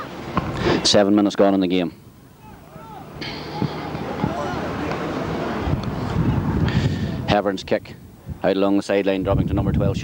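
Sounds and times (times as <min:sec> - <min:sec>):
distant players calling out: 0:01.8 - 0:07.4.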